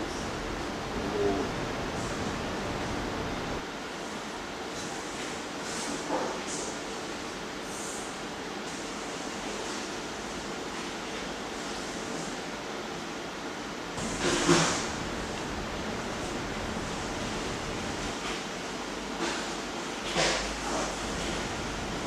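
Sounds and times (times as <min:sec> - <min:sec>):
steady hissing noise: 0:00.0 - 0:22.0.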